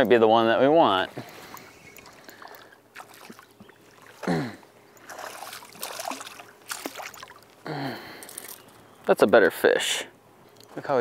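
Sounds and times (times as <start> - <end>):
fish splashing at water surface: 1.4 - 4.2, 5.0 - 7.4.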